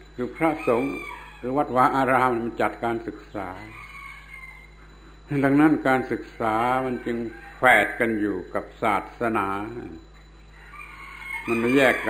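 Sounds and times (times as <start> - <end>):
man speaking: 0.2 - 3.7, 5.3 - 10.1, 11.5 - 12.0.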